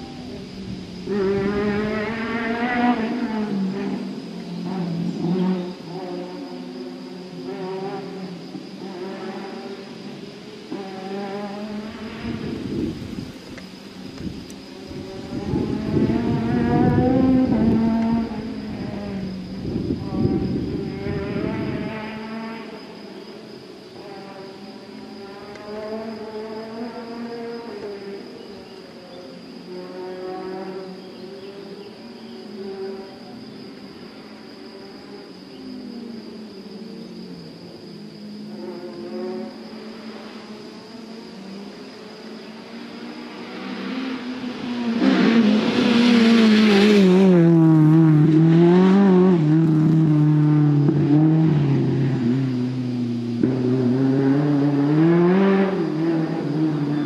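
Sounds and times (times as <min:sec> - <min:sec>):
distant rally car engine revving: 0:01.0 - 0:13.6, 0:14.7 - 0:23.3, 0:23.9 - 0:28.8, 0:38.4 - 0:57.0.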